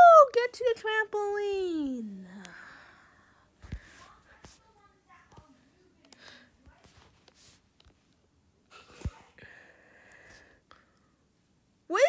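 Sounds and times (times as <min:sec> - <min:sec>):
person speaking: 0:00.0 - 0:03.0
breathy hiss: 0:08.7 - 0:11.0.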